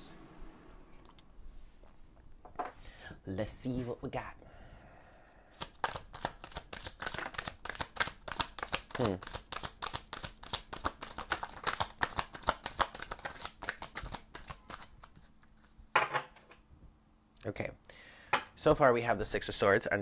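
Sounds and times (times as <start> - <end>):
cards being shuffled: 5.6 - 15.8.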